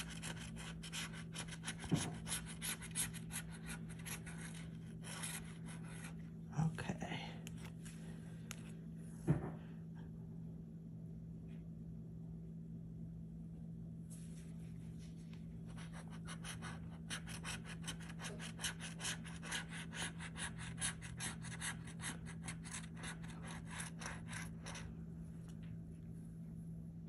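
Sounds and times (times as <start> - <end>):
metal tool scratching ticket: 0.0 - 5.8, 16.2 - 24.9
steady low hum: 0.0 - 27.0.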